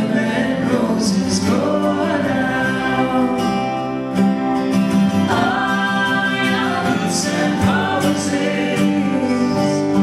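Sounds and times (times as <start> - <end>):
man singing: 0.0 - 3.8, 5.3 - 10.0
strummed acoustic guitar: 0.0 - 10.0
woman singing harmony: 5.3 - 10.0.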